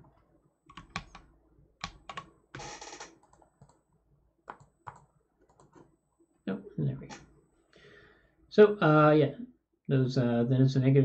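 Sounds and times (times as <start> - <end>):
keyboard and mouse clicks: 0.7 - 3.8, 4.5 - 5.9.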